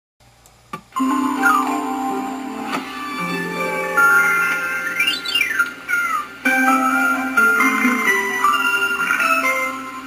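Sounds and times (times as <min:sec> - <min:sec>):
music: 0:01.0 - 0:10.0.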